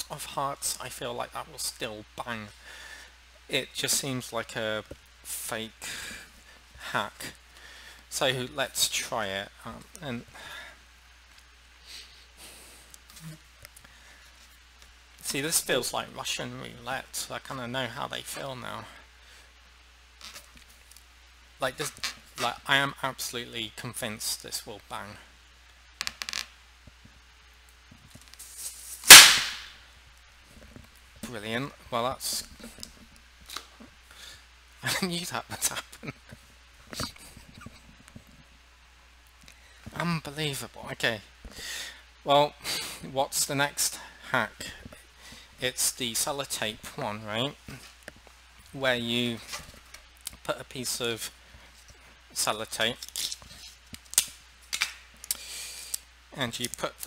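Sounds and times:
tape clicking and crackling: 26.0s - 29.7s, 52.9s - 56.0s
tape peeling off: 28.2s - 29.8s, 53.0s - 55.0s
balloon bursting: 29.0s - 29.8s
tape snapping: 29.0s - 29.8s, 53.0s - 55.4s.

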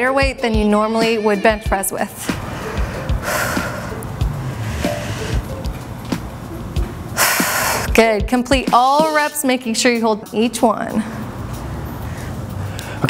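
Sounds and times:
music with steady beat: 0.0s - 9.6s
person breathing out hard: 2.2s - 5.6s, 7.2s - 7.9s.

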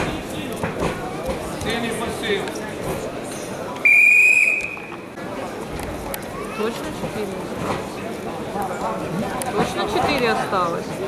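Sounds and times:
arena crowd noise: 0.0s - 11.0s
voices: 0.0s - 11.0s
referee's whistle blast: 3.8s - 5.0s.

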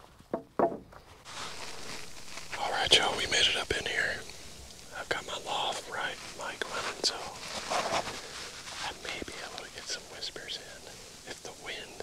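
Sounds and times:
breeze in trees: 0.0s - 12.0s
knocks on wooden table: 0.3s - 0.8s.

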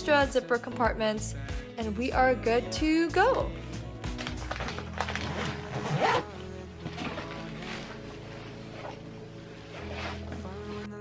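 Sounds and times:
soft background music: 0.0s - 11.0s
backpack zipper being pulled: 4.7s - 6.4s, 9.6s - 10.4s.

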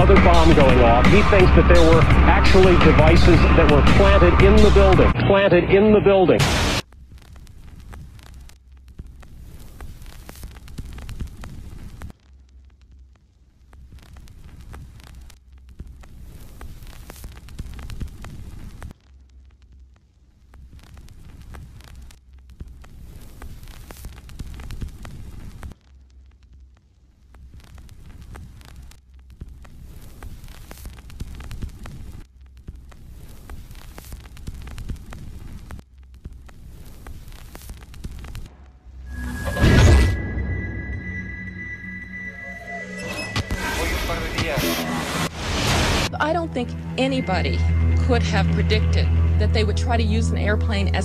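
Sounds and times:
throbbing droning ambient music: 0.0s - 6.4s, 38.4s - 51.0s.

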